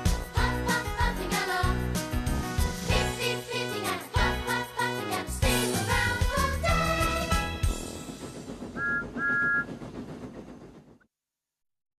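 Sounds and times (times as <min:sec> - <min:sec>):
toy steam whistle toots: 0:08.8 - 0:09.7.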